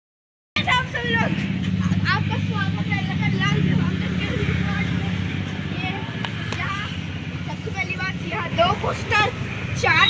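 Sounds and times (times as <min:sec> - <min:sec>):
low engine hum: 0:00.6 - 0:10.0
people's voices: 0:00.6 - 0:10.0.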